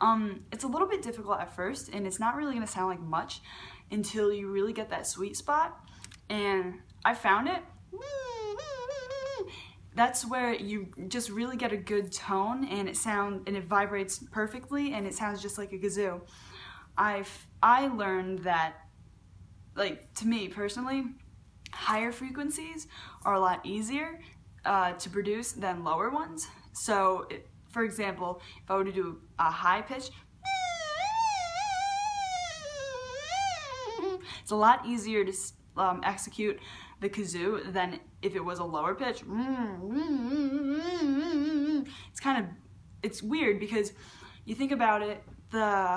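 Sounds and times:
beatbox kazoo hum: 0:07.9 - 0:09.8, 0:30.4 - 0:34.4, 0:39.3 - 0:42.0.

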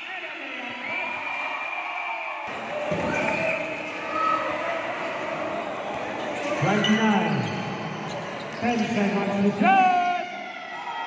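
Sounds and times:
crowd din in gymnasium: 0:00.0 - 0:11.0.

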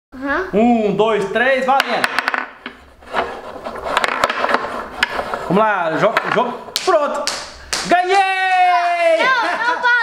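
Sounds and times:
wooden players clicking and knocking: 0:01.6 - 0:08.0
wooden rods sliding in frame: 0:02.6 - 0:06.4.

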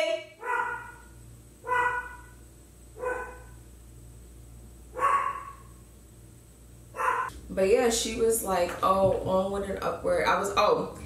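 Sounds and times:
dog barking: 0:00.4 - 0:01.0, 0:01.6 - 0:02.4, 0:03.0 - 0:03.6, 0:05.0 - 0:05.7, 0:07.0 - 0:07.3.

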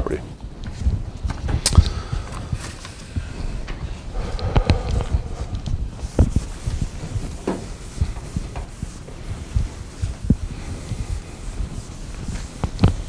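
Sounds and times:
eraser wiping a chalkboard: 0:04.1 - 0:13.0.

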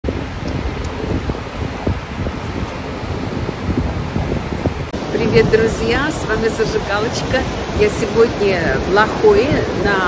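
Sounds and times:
wind buffeting microphone: 0:00.0 - 0:10.0
ocean surf breaking: 0:00.1 - 0:10.0.

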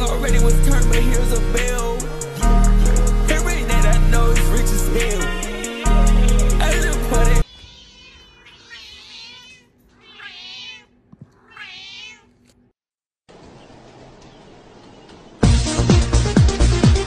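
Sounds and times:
cat meowing: 0:07.4 - 0:12.5.

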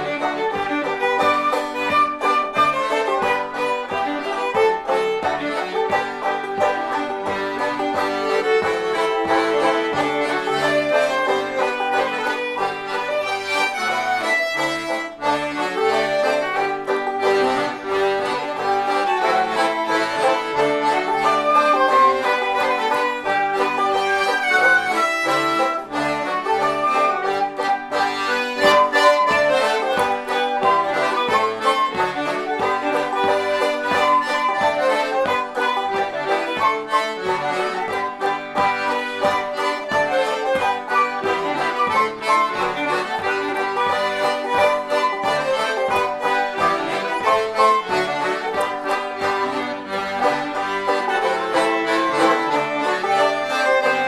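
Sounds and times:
banjo: 0:00.0 - 0:54.0
button accordion: 0:00.0 - 0:54.0
fiddle: 0:00.0 - 0:54.0.

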